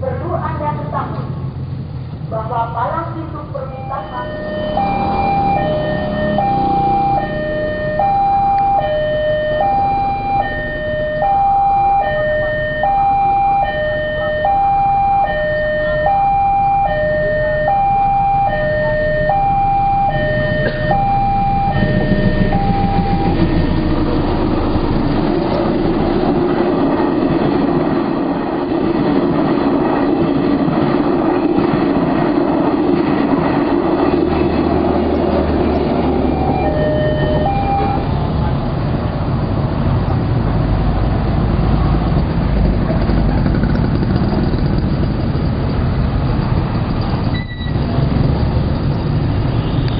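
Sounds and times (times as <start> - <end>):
level crossing two-tone alarm: 3.6 - 25.2, 35.9 - 38.1
train wheels rumbling on rail: 14.4 - 49.9.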